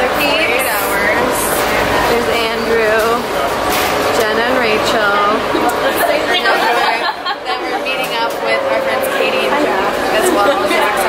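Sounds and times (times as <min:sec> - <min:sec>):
people chattering excitedly: 0:00.0 - 0:11.0.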